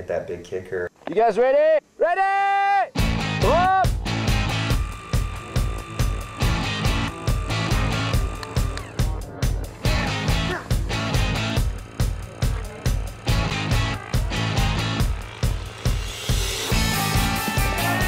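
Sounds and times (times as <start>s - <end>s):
rock music with driving beat: 3.0s - 18.0s.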